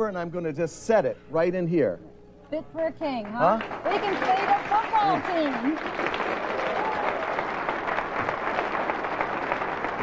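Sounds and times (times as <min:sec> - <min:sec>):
audience applauding: 0:03.2 - 0:10.0.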